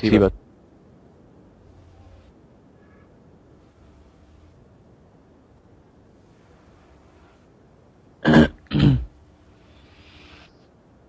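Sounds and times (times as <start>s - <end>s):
man clearing throat: 8.2s - 9.2s.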